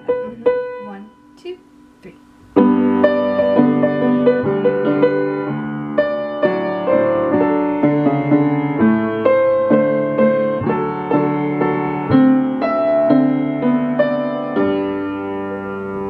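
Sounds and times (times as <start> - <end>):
piano duet: 0.0 - 16.0.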